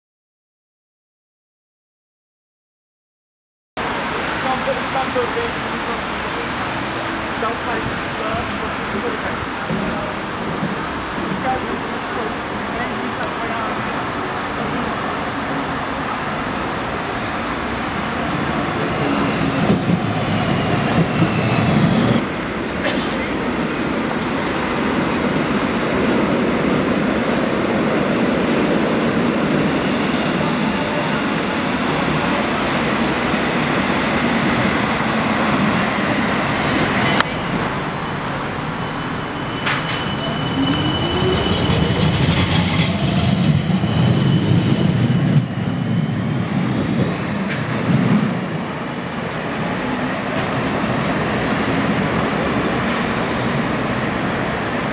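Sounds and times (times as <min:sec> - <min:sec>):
tram wheels rumbling on rail: 0:03.8 - 0:54.9
high wheel squeal: 0:29.0 - 0:46.3.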